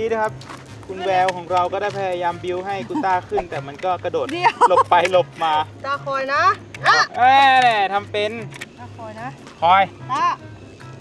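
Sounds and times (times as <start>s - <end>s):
quiet background music with bass: 0.0s - 11.0s.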